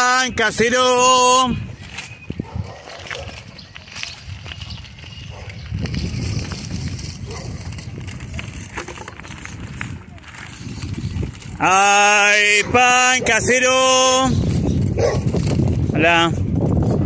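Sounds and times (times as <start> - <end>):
footsteps crunching on gravel: 1.6 - 11.6.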